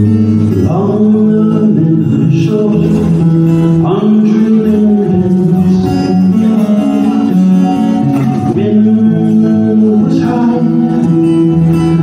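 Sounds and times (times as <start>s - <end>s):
guitars playing slow song: 0.0s - 12.0s
person singing: 0.0s - 12.0s.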